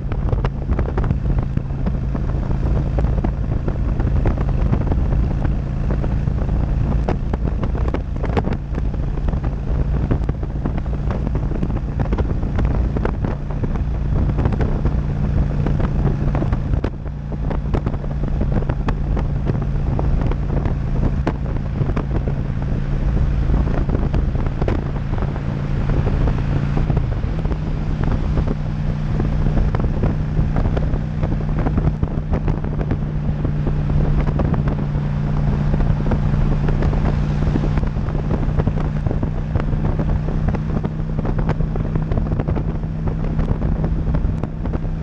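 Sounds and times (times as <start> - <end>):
motorcycle engine drone: 0.0 - 45.0
wind buffeting microphone: 0.0 - 45.0.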